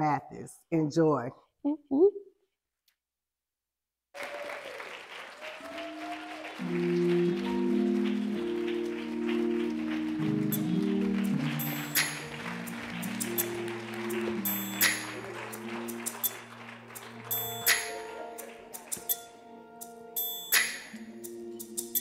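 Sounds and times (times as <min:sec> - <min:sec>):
applause: 0:04.1 - 0:19.2
sharp claps: 0:04.2 - 0:19.2, 0:20.5 - 0:21.0
church organ chords: 0:06.5 - 0:20.2.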